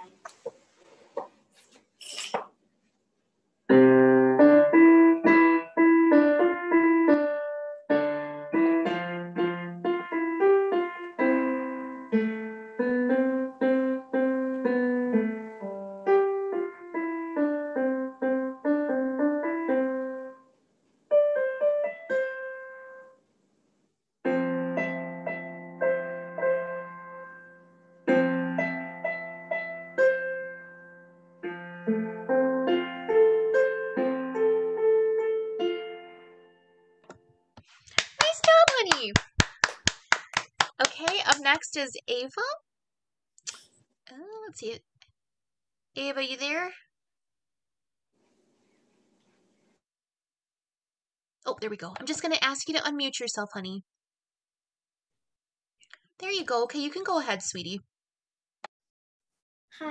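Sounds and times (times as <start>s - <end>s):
digital piano solo piece: 3.7s - 20.4s, 21.1s - 23.2s, 24.2s - 37.4s.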